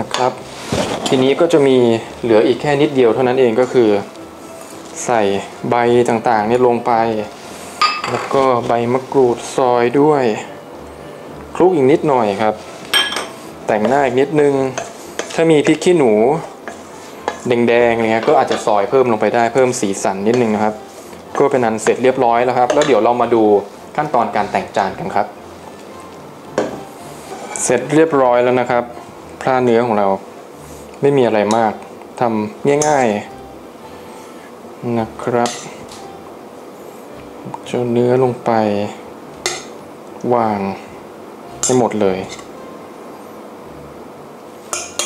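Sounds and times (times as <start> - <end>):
man speaking: 27.6 - 30.2.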